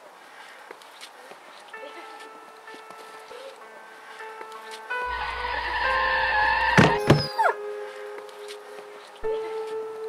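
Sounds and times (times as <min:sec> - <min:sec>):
background music: 0:01.7 - 0:10.0.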